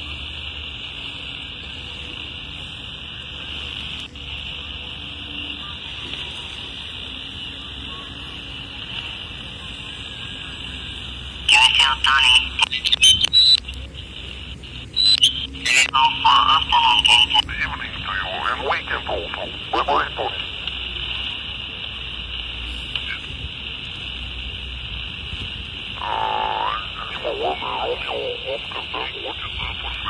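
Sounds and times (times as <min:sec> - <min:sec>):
radio static hiss: 0:00.0 - 0:30.0
high steady tone: 0:09.7 - 0:23.2, 0:25.8 - 0:30.0
distorted radio signal burst: 0:09.7 - 0:30.0.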